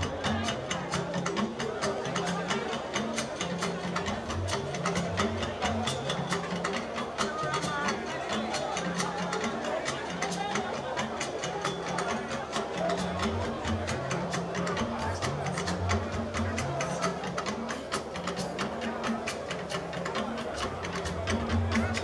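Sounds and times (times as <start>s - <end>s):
quick percussion strokes: 0.0s - 22.0s.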